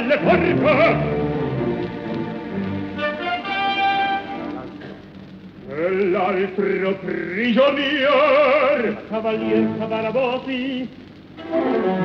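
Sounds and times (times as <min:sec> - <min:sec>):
baritone voice singing: 0:00.0 - 0:01.9, 0:05.6 - 0:12.0
orchestra playing held chords: 0:00.0 - 0:04.9.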